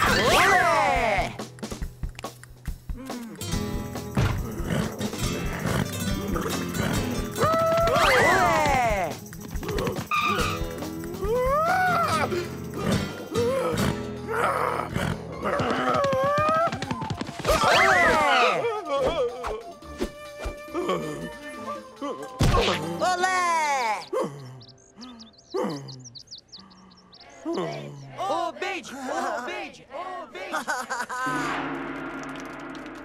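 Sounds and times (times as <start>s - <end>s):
background music: 0.0s - 26.2s
high twittering cartoon chirps: 23.3s - 28.2s
cartoon groans: 24.1s - 26.2s.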